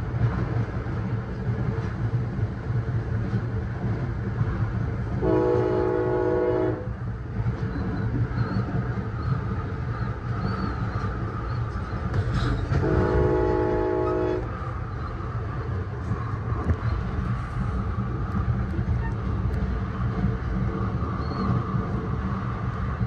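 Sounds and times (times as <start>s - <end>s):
passenger train rumbling: 0.0s - 23.0s
train horn blasts: 5.2s - 6.9s, 12.7s - 14.5s.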